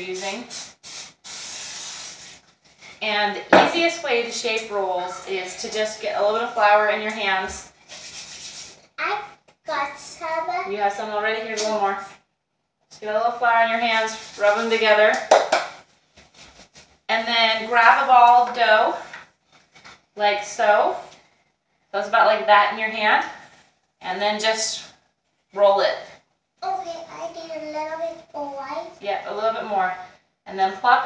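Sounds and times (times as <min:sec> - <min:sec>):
aerosol can spraying: 0:00.0 - 0:02.4, 0:07.9 - 0:08.8
hands rubbing together: 0:00.0 - 0:03.0, 0:07.3 - 0:08.9, 0:13.9 - 0:17.0.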